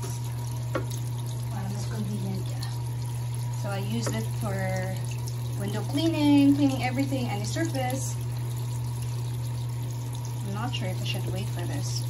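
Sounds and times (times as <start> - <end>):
steady low hum: 0.0 - 12.0
water pouring into washing machine: 0.0 - 12.0.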